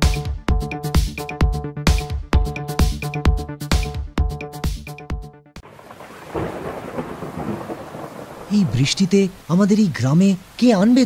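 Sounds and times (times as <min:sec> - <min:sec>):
heavy rain pouring off roof: 0:05.6 - 0:11.0
low thunder rumble: 0:05.7 - 0:09.5.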